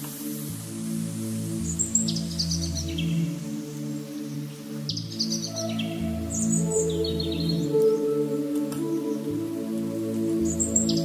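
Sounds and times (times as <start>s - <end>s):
slow ambient music: 0.0s - 11.0s
bird chirps: 1.6s - 9.3s.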